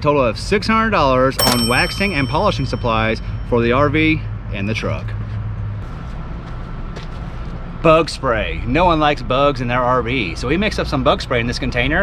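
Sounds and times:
faint thin high tone: 1.4 - 3.9.

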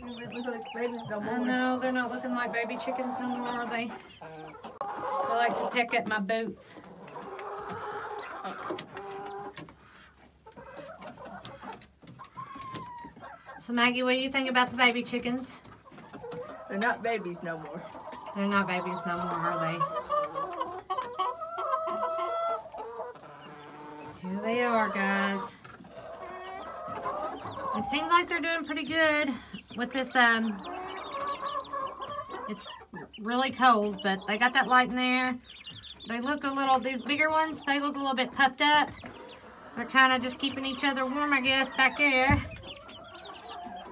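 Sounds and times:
chicks peeping and chirping: 0.0 - 43.9
hens clucking: 0.0 - 43.9.

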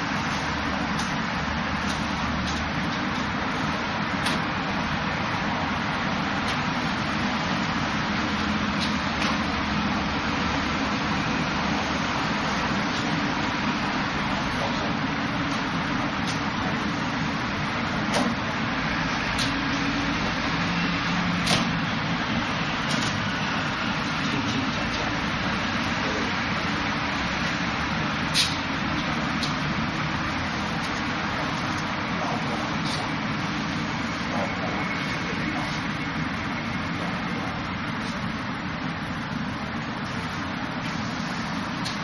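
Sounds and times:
rushing noise: 0.0 - 42.0.

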